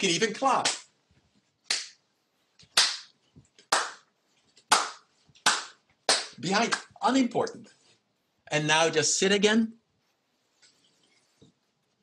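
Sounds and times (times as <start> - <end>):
person clapping hands: 0.6 - 0.9, 1.7 - 2.0, 2.6 - 4.1, 4.7 - 6.9.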